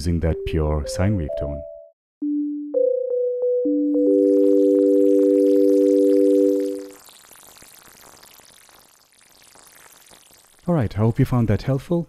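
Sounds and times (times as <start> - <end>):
synthesizer sine-wave tones: 2.2 - 7.2
faint hiss: 5.8 - 11.8.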